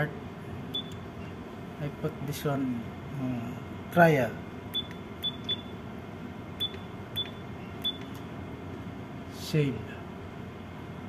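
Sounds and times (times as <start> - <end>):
low equipment hum: 0.0 - 11.0
keystroke beeps with clicks: 0.7 - 1.0, 4.7 - 5.7, 6.6 - 8.2.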